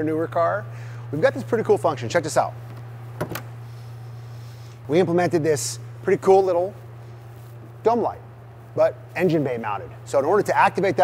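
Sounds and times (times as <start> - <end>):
hood latch clicks: 3.2 - 3.5.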